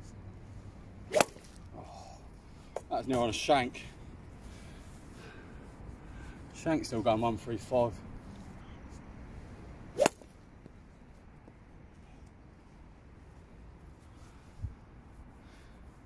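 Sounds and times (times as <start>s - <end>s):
low outdoor background: 0.0s - 16.0s
golf club striking ball: 1.1s - 1.6s, 10.0s - 10.3s.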